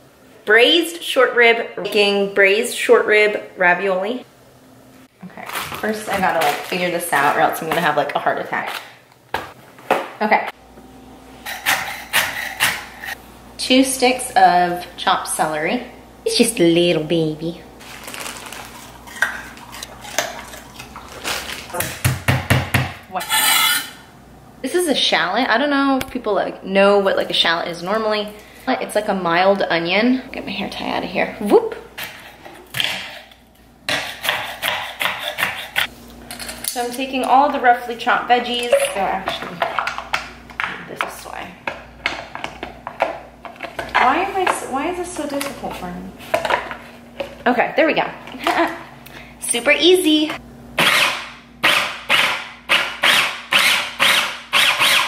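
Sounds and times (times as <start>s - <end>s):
knife chopping on cutting board: 33.9s - 35.9s.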